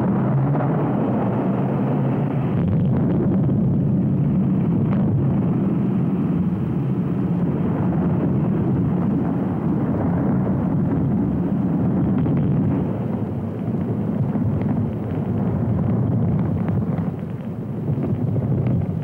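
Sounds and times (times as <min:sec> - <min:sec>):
muffled underwater explosion rumble: 0:00.0 - 0:19.0.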